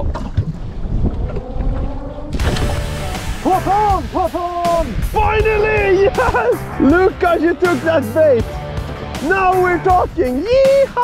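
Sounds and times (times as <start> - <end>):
wind buffeting microphone: 0.0 - 7.7.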